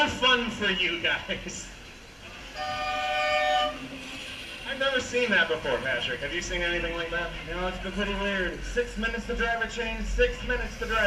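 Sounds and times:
horn blast: 0:02.5 - 0:04.3.

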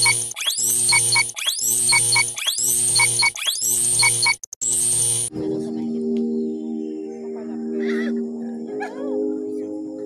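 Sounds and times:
short electronic beeps: 0:00.0 - 0:05.3.

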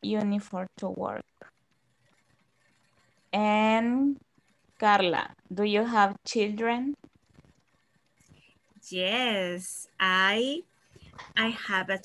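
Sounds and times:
woman speaking: 0:00.0 - 0:01.5, 0:03.4 - 0:04.2, 0:04.8 - 0:07.0, 0:08.8 - 0:12.0.

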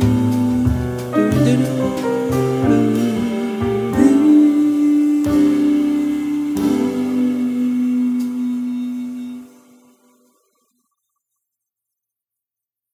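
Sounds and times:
woman singing long notes: 0:00.0 - 0:09.8
piano chords: 0:00.0 - 0:10.6.

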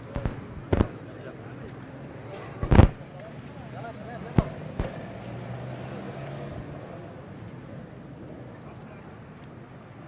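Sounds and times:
faint background voices: 0:00.0 - 0:09.6.

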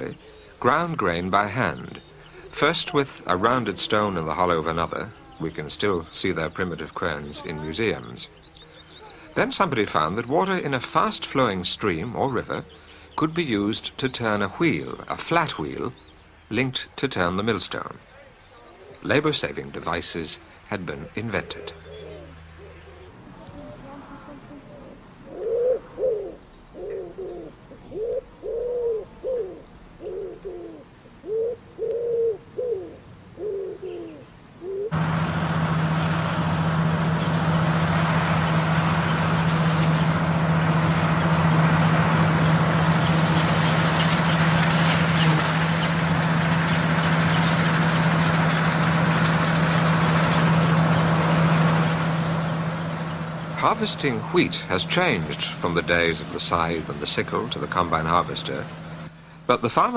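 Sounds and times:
combine harvester running: 0:00.0 - 0:16.1, 0:34.9 - 0:59.9
pigeon cooing: 0:21.4 - 0:35.0.

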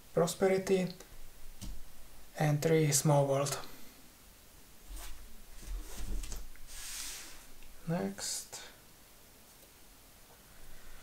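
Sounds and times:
soft sliding hiss: 0:00.2 - 0:11.0.

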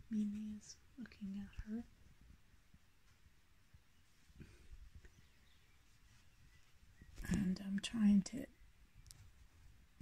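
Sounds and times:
woman speaking softly: 0:00.0 - 0:01.9, 0:07.2 - 0:08.6.

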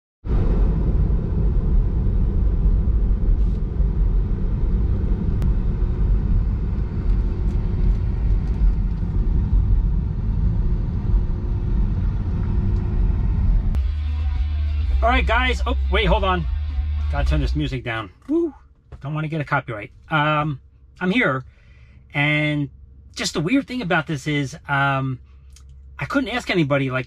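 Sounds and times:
road and tyre noise: 0:00.2 - 0:26.9.

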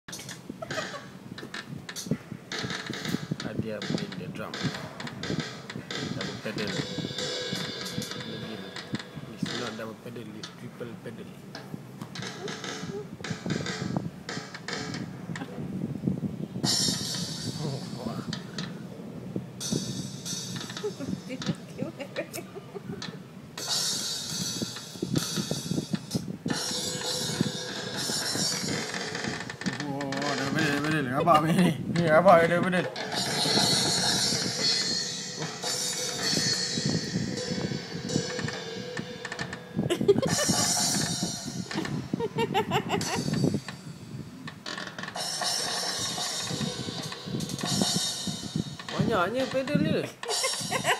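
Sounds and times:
drum hits from tablet speaker: 0:32.0 - 0:43.8, 0:45.1 - 0:49.7.

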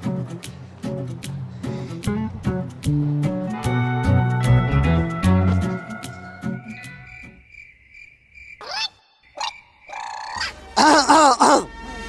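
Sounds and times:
crickets chirping: 0:06.0 - 0:11.1.

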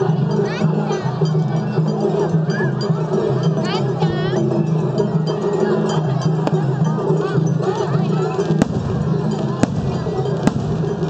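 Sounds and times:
crowd voices: 0:00.0 - 0:11.0
festival music: 0:00.0 - 0:11.0
fireworks bangs: 0:08.6 - 0:11.0.

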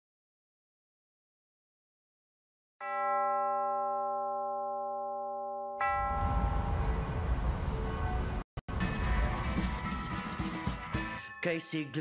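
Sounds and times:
wall clock chime: 0:02.8 - 0:06.3.

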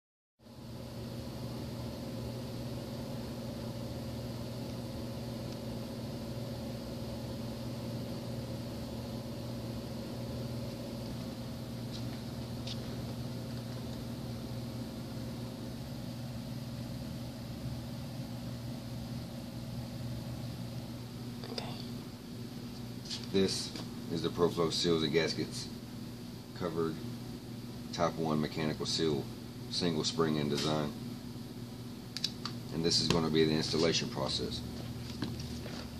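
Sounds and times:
low mechanical hum with hiss: 0:00.4 - 0:35.9.

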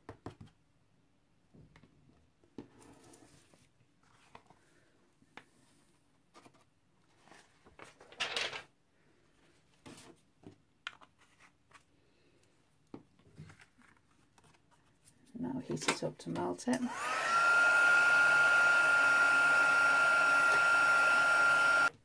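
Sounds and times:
paper rustling: 0:06.3 - 0:08.7, 0:13.3 - 0:15.3.

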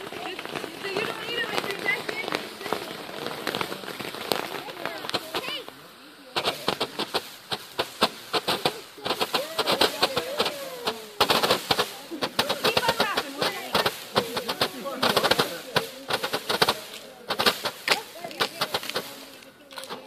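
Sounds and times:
fireworks crackling pops: 0:00.0 - 0:20.0.

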